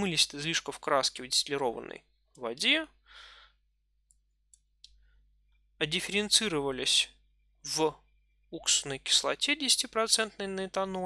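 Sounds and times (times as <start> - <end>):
man breathing in softly: 3.0 - 3.6.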